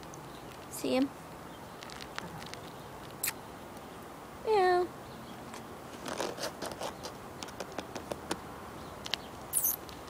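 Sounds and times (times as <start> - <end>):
light scratching and scraping: 5.5 - 8.4.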